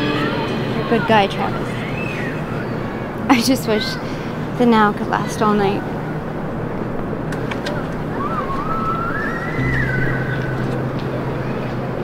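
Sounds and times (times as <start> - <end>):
thin wavering tone: 0.0 - 3.2, 9.3 - 12.0
low hum: 0.0 - 3.3, 9.5 - 12.0
distant city traffic hiss: 0.0 - 12.0.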